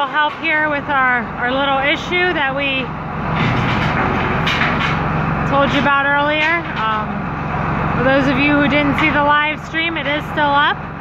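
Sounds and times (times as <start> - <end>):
tractor diesel engine running: 0.0 - 11.0.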